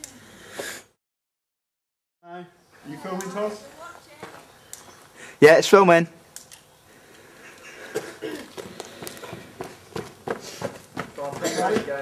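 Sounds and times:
footsteps: 0:03.5 - 0:05.2, 0:07.0 - 0:12.0.

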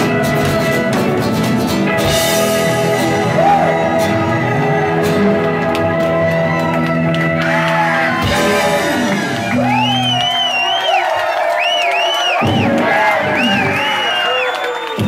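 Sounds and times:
rock band holding a chord: 0:00.0 - 0:10.8, 0:12.4 - 0:14.2
crowd shouting and whooping: 0:02.4 - 0:15.0.

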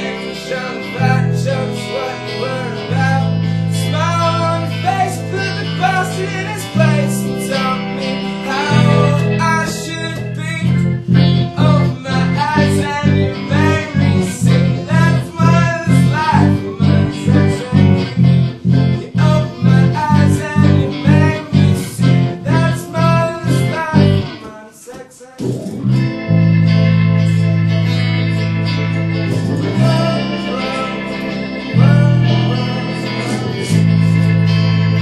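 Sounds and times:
live band playing rock song: 0:00.0 - 0:24.4, 0:25.5 - 0:35.0.

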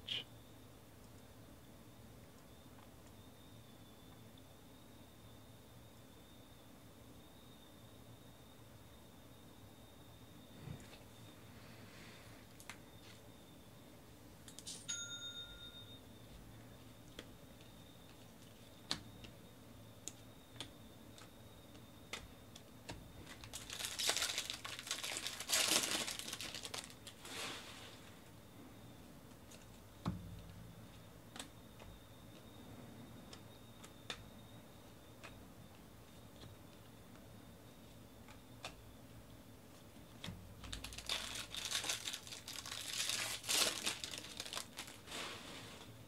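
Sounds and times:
bell-like chime: 0:14.8 - 0:16.0
foil wrapper crinkling and tearing: 0:23.2 - 0:27.4, 0:40.6 - 0:45.1.

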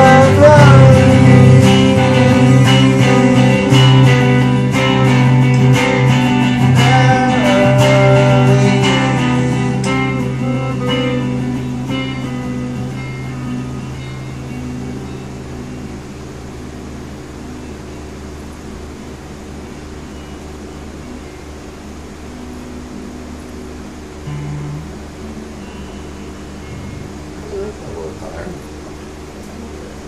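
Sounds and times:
electric guitar chord ringing: 0:00.0 - 0:30.0
guitar amplifier hum and hiss: 0:00.0 - 0:30.0
short guitar note: 0:24.2 - 0:25.9, 0:26.5 - 0:28.8.

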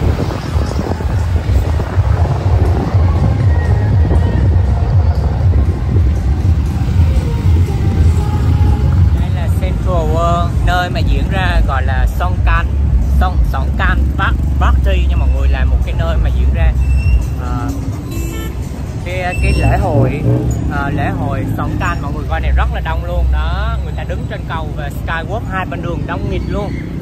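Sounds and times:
bass-heavy music: 0:00.0 - 0:27.0
road traffic: 0:00.0 - 0:27.0.

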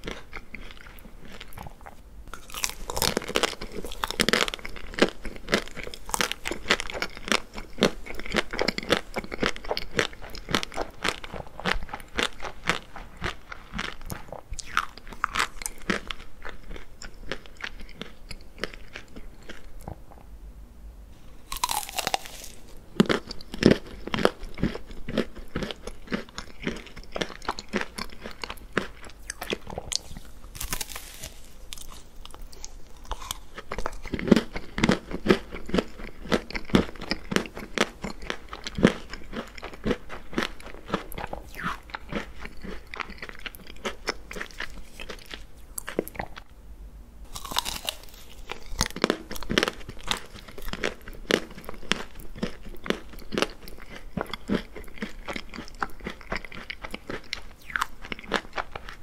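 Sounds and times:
crunching ice cream cone: 0:00.0 - 0:20.0, 0:21.4 - 0:46.5, 0:47.3 - 0:59.0.

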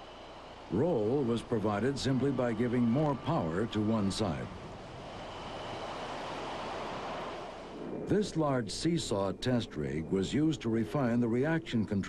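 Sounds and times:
faint high whine: 0:00.0 - 0:12.0
jet engines rushing: 0:00.0 - 0:12.0.

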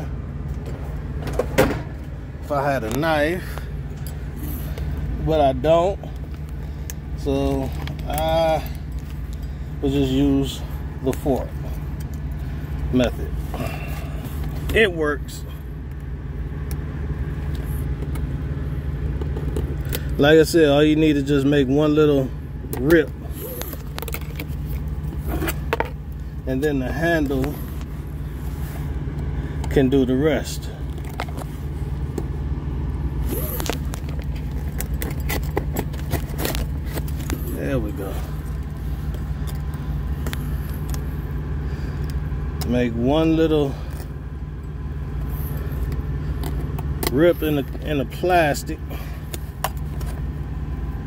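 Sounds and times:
low mechanical hum: 0:00.0 - 0:51.0
plastic fork scraping packaging: 0:33.3 - 0:37.4.

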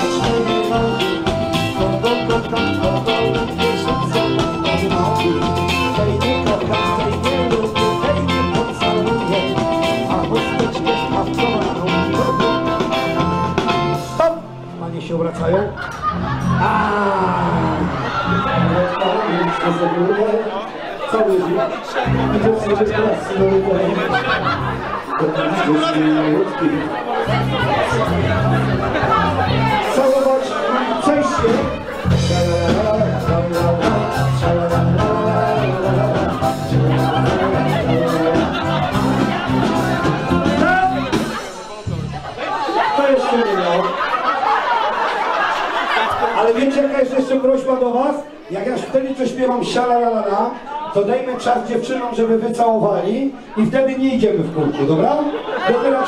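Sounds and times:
dance band playing upbeat tune: 0:00.0 - 0:48.0
crowd chatter: 0:00.0 - 0:56.0.

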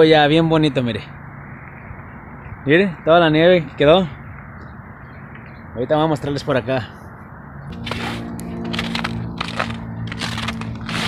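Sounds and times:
footsteps crunching through snow: 0:07.7 - 0:11.0.

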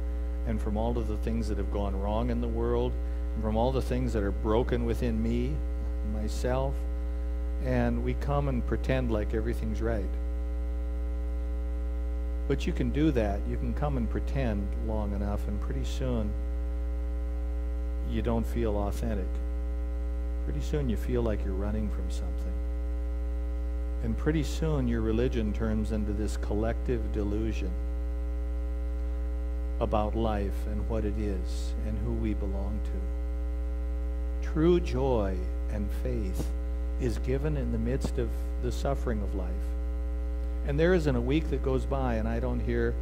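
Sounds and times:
electrical mains hum: 0:00.0 - 0:43.0
man talking: 0:00.4 - 0:06.9, 0:07.6 - 0:10.2, 0:12.5 - 0:16.4, 0:18.0 - 0:19.4, 0:20.4 - 0:22.6, 0:24.0 - 0:27.8, 0:29.8 - 0:33.1, 0:34.4 - 0:39.8, 0:40.6 - 0:43.0.

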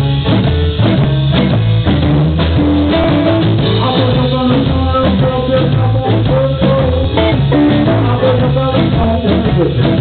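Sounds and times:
live blues band: 0:00.0 - 0:10.0.

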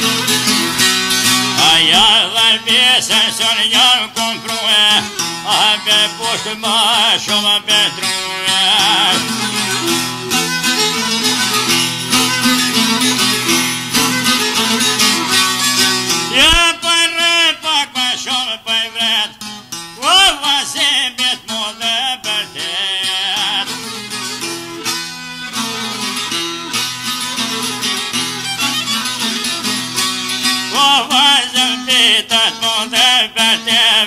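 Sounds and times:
ornamented lead melody with vibrato: 0:00.0 - 0:16.5, 0:22.5 - 0:31.8
plucked string accompaniment: 0:00.0 - 0:34.0.

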